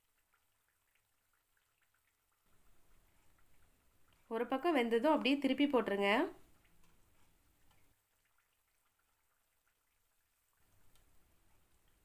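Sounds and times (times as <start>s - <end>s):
food crackling in frying oil: 0.0s - 12.0s.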